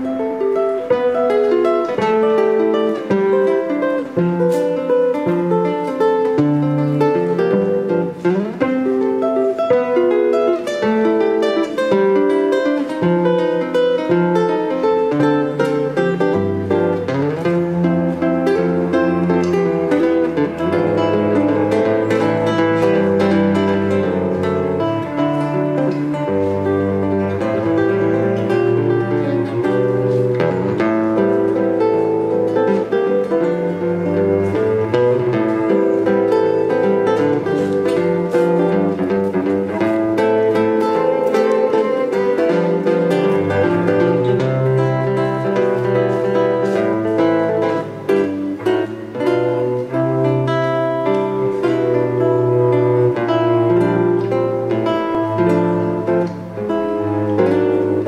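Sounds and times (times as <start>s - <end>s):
fingerstyle acoustic guitar: 0.0s - 58.0s
cello bass line: 13.0s - 58.0s.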